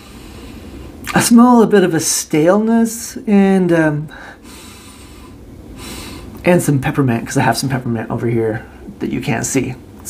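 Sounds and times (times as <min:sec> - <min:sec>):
man sniffing through nose: 0:04.4 - 0:06.4.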